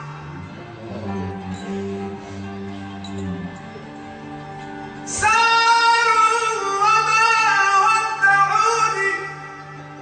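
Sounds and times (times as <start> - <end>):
soft instrumental accompaniment: 0.0 - 10.0.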